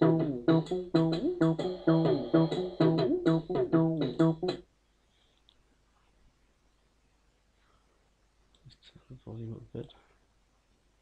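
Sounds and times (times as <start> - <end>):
acid bass synthesizer line: 0.0 - 4.6.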